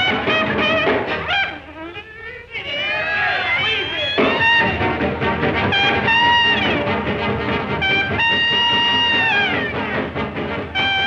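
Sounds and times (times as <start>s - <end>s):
old jazz recording: 0.0s - 11.0s.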